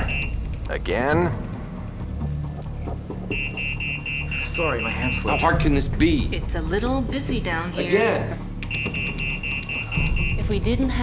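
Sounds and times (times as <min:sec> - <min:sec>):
high rapid alarm beeping: 0:00.0 - 0:00.4, 0:03.2 - 0:05.7, 0:08.6 - 0:10.8.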